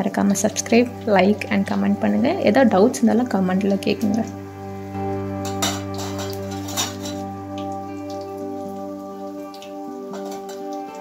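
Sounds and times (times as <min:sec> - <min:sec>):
hot oil sizzling and popping: 0:00.0 - 0:11.0
soft background music: 0:00.0 - 0:11.0.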